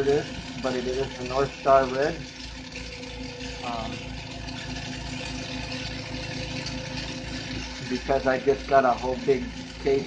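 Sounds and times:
oxygen concentrators pulsing: 0:00.0 - 0:10.0.

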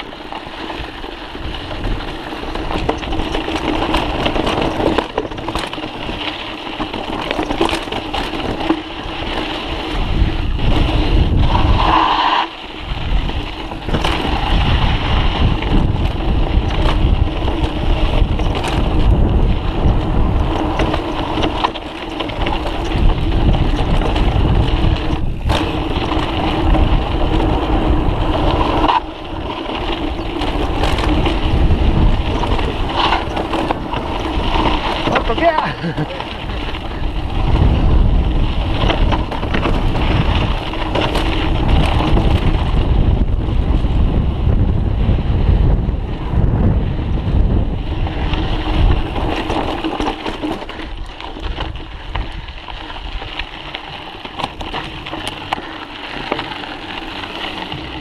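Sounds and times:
bike knocks and rattles: 0:00.0 - 0:11.8, 0:12.8 - 0:58.0
tyres on dirt trail: 0:00.0 - 0:58.0
wind rushing over microphone: 0:00.0 - 0:58.0.

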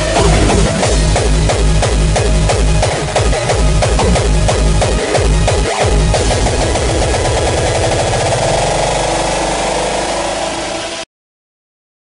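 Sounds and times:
distorted hardcore electronic music: 0:00.0 - 0:11.0.

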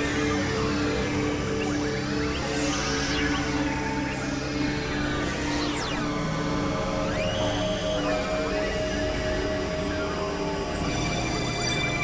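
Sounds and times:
electronic drone: 0:00.0 - 0:12.0.

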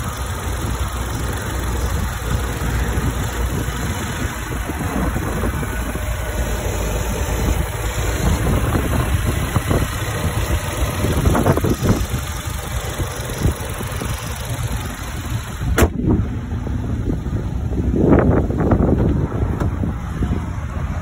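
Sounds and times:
car engine idling: 0:00.0 - 0:21.0
sharp knock: 0:15.8 - 0:16.0.

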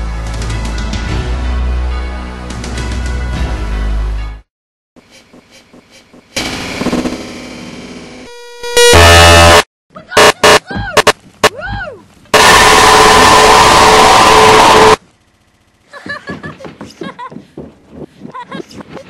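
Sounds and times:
short beep: 0:08.3 - 0:09.6
long distorted roar: 0:08.8 - 0:09.6, 0:12.4 - 0:15.0
clipped noise blast: 0:08.8 - 0:11.2, 0:12.4 - 0:15.0
sharp thumps with bending pitch: 0:10.2 - 0:11.8.

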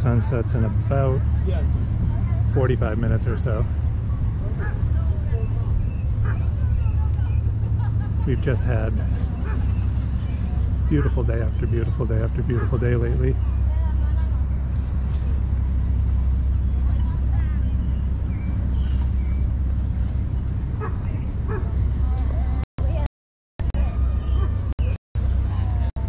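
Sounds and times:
faint voices of passers-by: 0:00.0 - 0:23.0, 0:23.8 - 0:26.0
wind buffeting microphone: 0:00.0 - 0:23.0
steady low rumble: 0:00.0 - 0:26.0.

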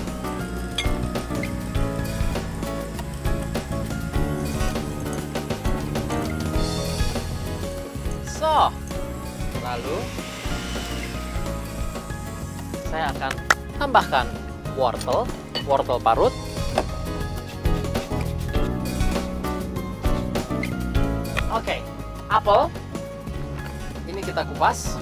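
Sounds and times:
electric hand mixer: 0:00.0 - 0:13.2
background music: 0:00.0 - 0:25.0.

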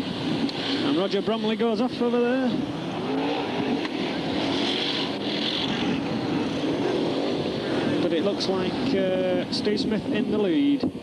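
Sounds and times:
racing car engines: 0:00.0 - 0:11.0.

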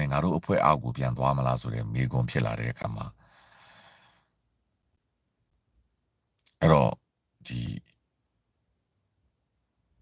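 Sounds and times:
man breathing out: 0:03.2 - 0:04.4.

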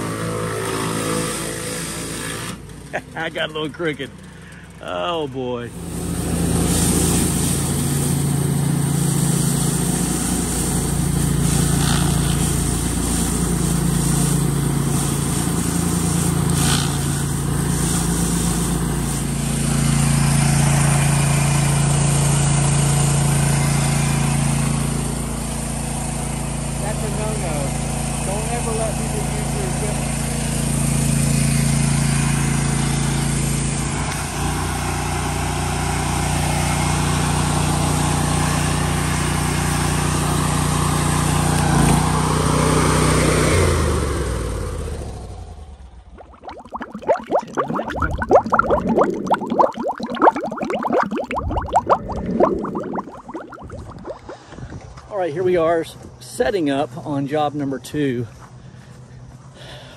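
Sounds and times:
pressure washer engine drone: 0:00.0 - 0:46.4
water spray hiss: 0:05.8 - 0:21.5.

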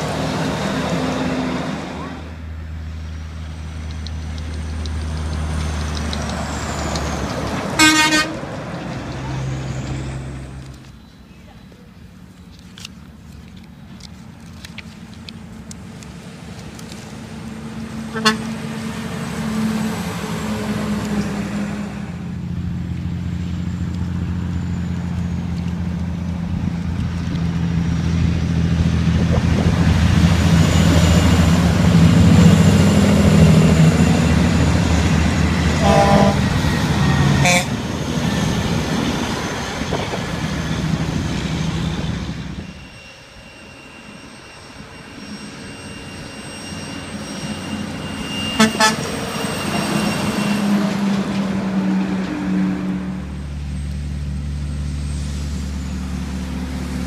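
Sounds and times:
trucks passing by: 0:00.0 - 0:57.0
truck horn blasts: 0:07.8 - 0:08.5, 0:18.1 - 0:18.6, 0:35.8 - 0:36.6, 0:37.2 - 0:37.8, 0:48.6 - 0:49.2.

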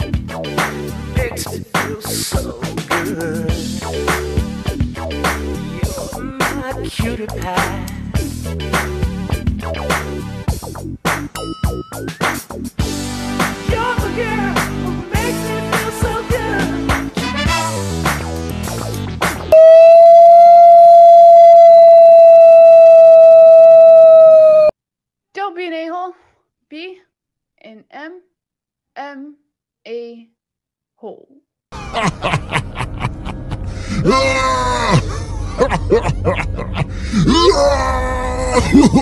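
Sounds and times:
person laughing: 0:03.0 - 0:03.8, 0:05.7 - 0:06.6, 0:31.8 - 0:39.0
person whooping and wailing: 0:19.6 - 0:24.7, 0:31.9 - 0:39.0.

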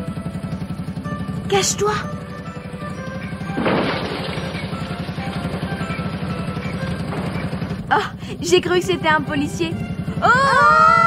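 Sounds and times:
small truck engine chugging: 0:00.0 - 0:11.0.

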